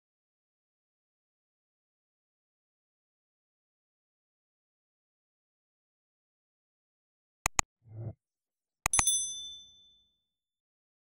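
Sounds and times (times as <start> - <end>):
mouse click: 7.5 - 8.1, 8.9 - 9.2
bright notification bell ding: 8.9 - 9.9.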